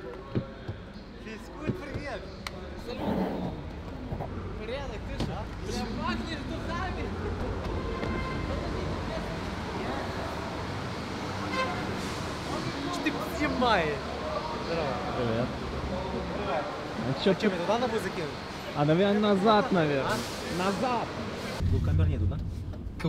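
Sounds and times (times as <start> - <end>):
traffic hum: 0.0 - 23.0.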